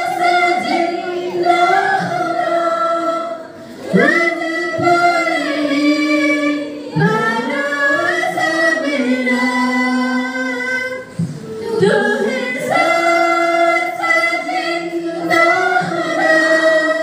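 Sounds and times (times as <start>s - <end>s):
choir singing without instruments: 0.0s - 17.0s.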